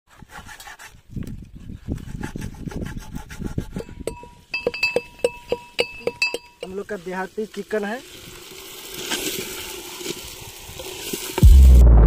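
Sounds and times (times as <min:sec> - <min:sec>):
knife cutting chicken on wood: 0:02.0 - 0:03.9
steady ringing tone: 0:04.1 - 0:06.7.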